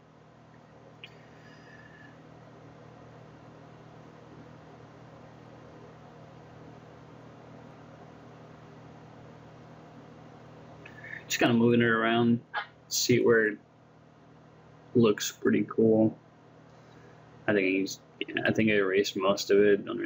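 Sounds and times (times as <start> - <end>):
microphone hiss: 0.0 - 20.0.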